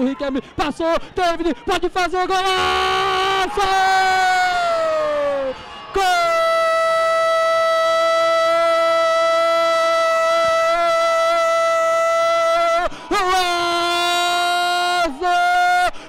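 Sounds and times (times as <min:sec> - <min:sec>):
man shouting goal: 0:01.3 - 0:16.0.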